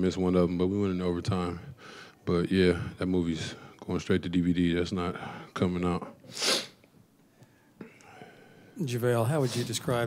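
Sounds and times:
man speaking: 0:08.8 - 0:10.0.

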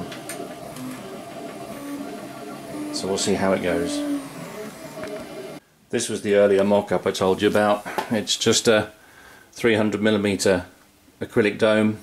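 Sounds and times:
stepper motor tones: 0:00.0 - 0:05.6.

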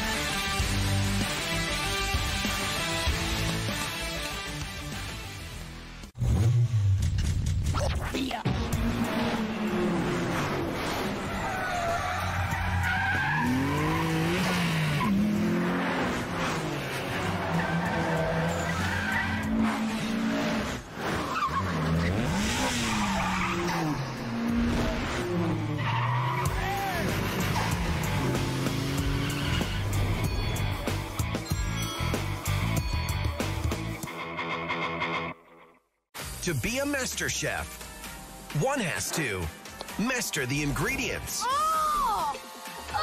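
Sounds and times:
sports car engines revving: 0:08.5 - 0:21.0, 0:21.6 - 0:31.2
music track: 0:36.2 - 0:43.0.

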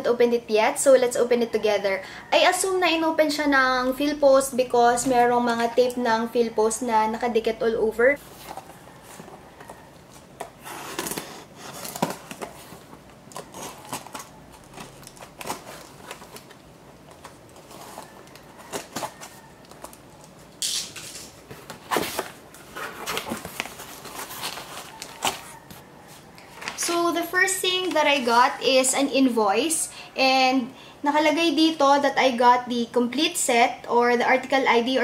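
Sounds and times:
paper rustling: 0:08.2 - 0:28.6
cardboard box being opened: 0:10.6 - 0:16.5.

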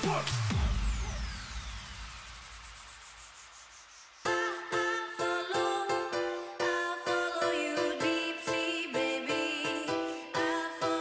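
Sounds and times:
white-noise sweep: 0:00.0 - 0:05.3.

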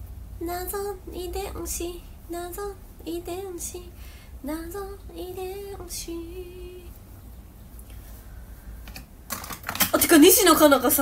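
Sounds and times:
faint low hum: 0:00.0 - 0:11.0
woman's voice: 0:09.8 - 0:11.0.

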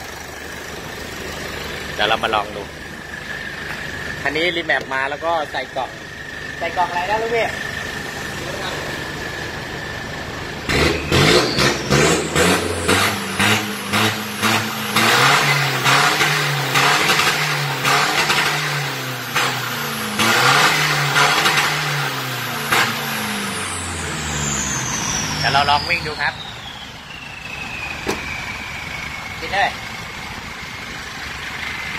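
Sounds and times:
diesel engine idling and revving: 0:00.0 - 0:31.9
turbo whistle falling in pitch: 0:26.0 - 0:29.3.

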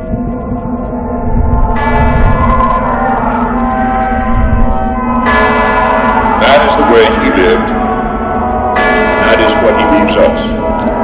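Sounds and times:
church bell tolling: 0:00.0 - 0:11.0.

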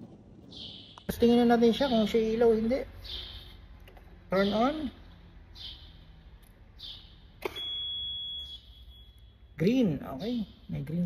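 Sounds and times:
high-pitched warning beep: 0:06.9 - 0:09.5.

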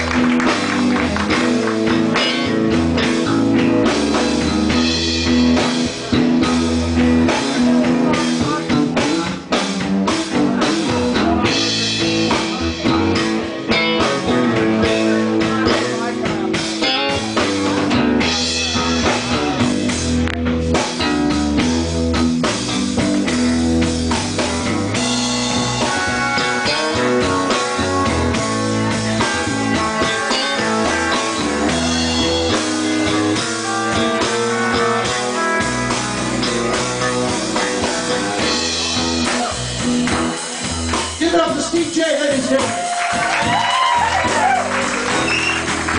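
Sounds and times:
electric bass guitar solo: 0:00.0 - 0:41.5, 0:42.2 - 0:45.9
live blues band playing: 0:00.0 - 0:45.9.

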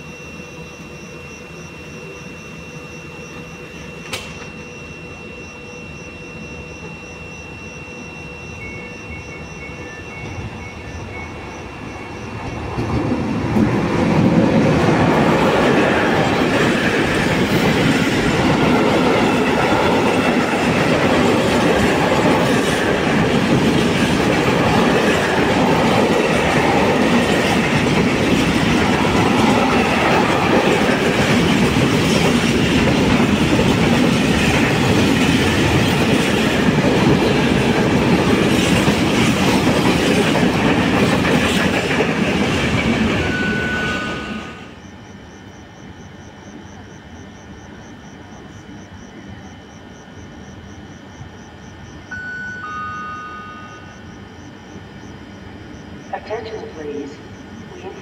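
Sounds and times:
electric locomotive passing: 0:00.0 - 0:58.0.

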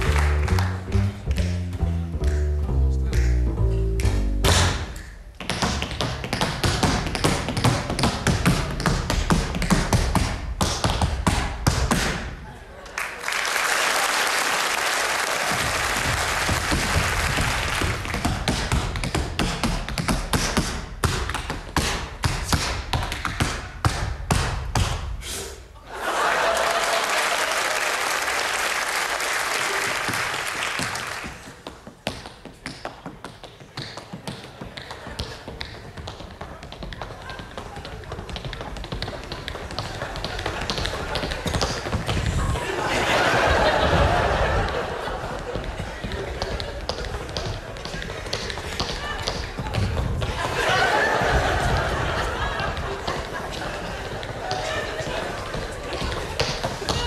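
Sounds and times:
bass-led music: 0:00.0 - 0:05.1
tap shoes clicking on stage: 0:00.0 - 0:12.3, 0:14.4 - 0:25.1, 0:28.2 - 0:57.0.

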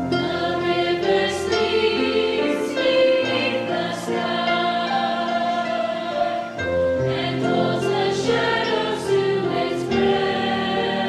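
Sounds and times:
choir singing in parts: 0:00.0 - 0:11.0.

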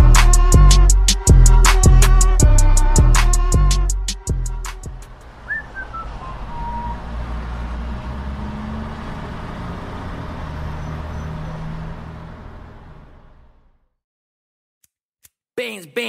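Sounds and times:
vehicle rumble and hiss: 0:02.6 - 0:13.7
short falling whistle: 0:05.5 - 0:07.0.

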